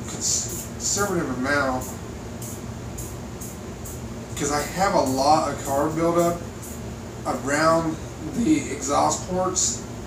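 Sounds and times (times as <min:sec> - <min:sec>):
aerosol spray hissing: 0:01.7 - 0:04.0.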